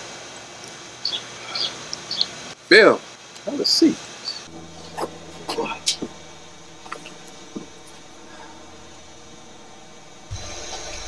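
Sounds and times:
background hiss: 0.0s - 11.0s
low hum: 4.4s - 11.0s.

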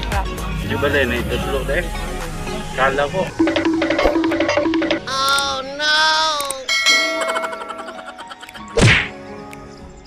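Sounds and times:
bright ringing ding: 6.7s - 7.8s.

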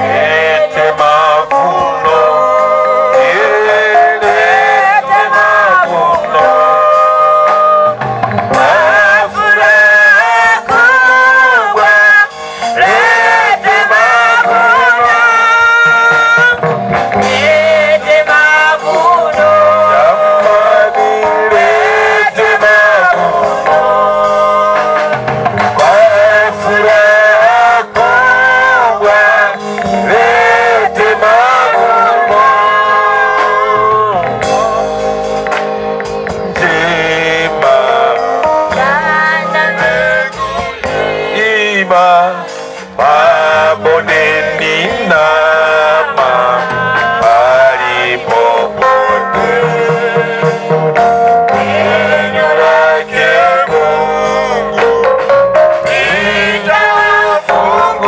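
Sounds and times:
women singing together: 0.0s - 16.6s, 17.2s - 34.7s, 36.6s - 54.9s, 55.8s - 58.0s
man's lead singing voice: 0.0s - 35.4s, 36.4s - 58.0s.

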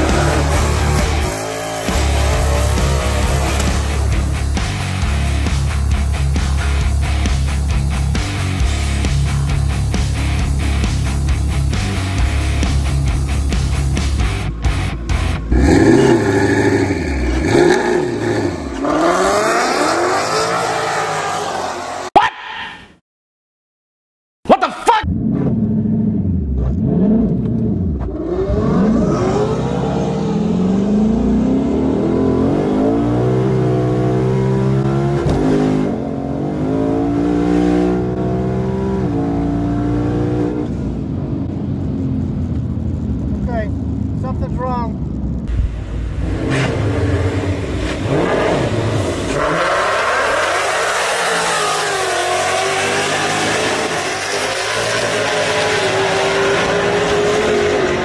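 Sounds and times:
car engine revving through gears: 0.0s - 6.8s, 15.4s - 22.1s, 25.1s - 41.0s, 46.1s - 58.0s
man talking: 24.5s - 25.1s, 43.4s - 45.0s
car running down drag strip: 25.1s - 58.0s.

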